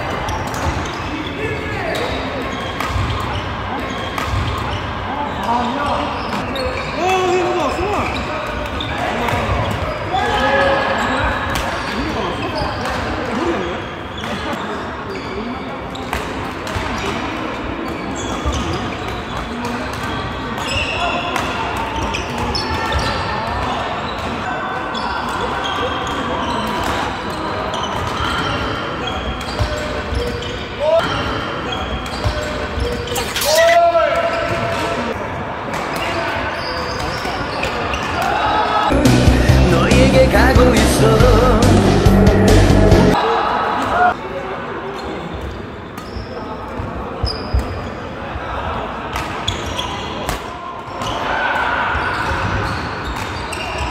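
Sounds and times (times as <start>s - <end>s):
shoes squeaking on wooden floor: 0.0s - 7.0s, 17.8s - 21.2s, 24.9s - 34.8s, 47.2s - 48.0s, 49.4s - 50.2s
voices of players: 0.0s - 53.9s.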